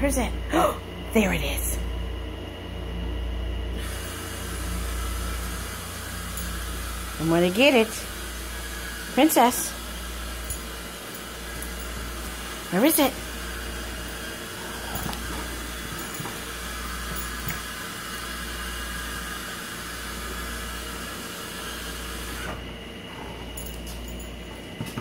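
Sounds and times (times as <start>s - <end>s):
fan-like hiss with low hum: 0.0s - 25.0s.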